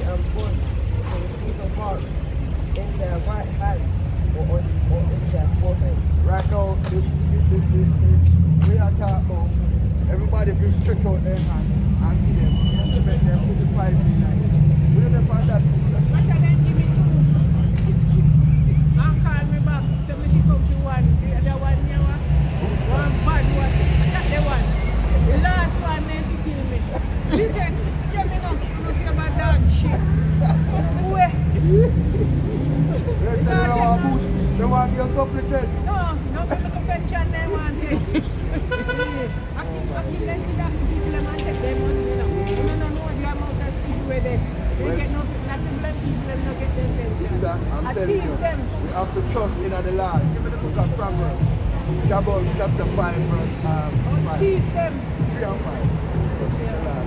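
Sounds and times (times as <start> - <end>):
street traffic drone: 0.0 - 57.0
voices talking: 0.0 - 57.0
vehicle horn: 38.7 - 39.6, 40.9 - 43.1.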